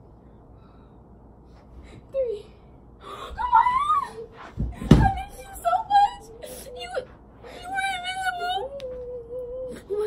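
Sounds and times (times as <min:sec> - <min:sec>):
girl whimpering and crying: 0:03.0 - 0:04.4, 0:05.0 - 0:10.0.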